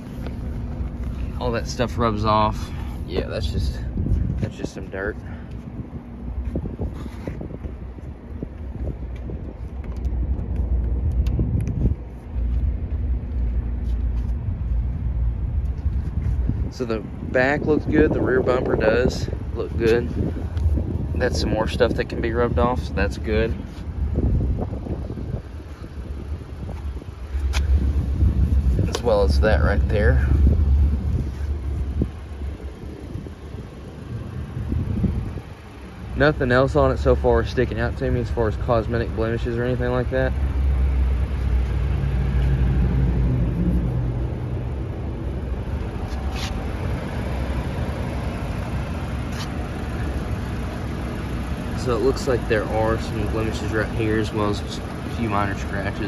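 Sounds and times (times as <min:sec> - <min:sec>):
wind buffeting microphone: 0:00.0 - 0:36.3.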